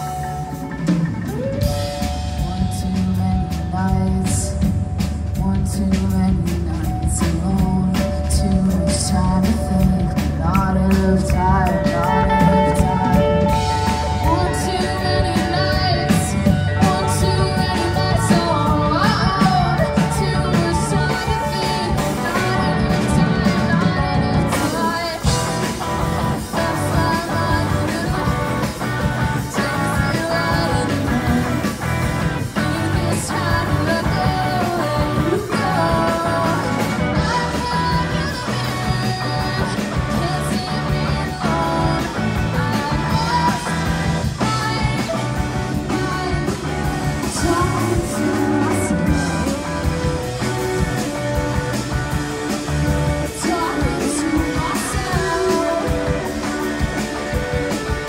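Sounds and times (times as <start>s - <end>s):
drum kit: 0.0s - 58.0s
electric guitar: 0.0s - 58.0s
woman singing into microphone: 1.3s - 50.2s, 53.1s - 58.0s.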